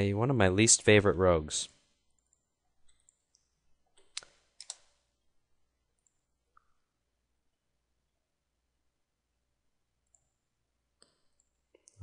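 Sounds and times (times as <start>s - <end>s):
faint computer mouse clicks: 2.2s - 4.9s.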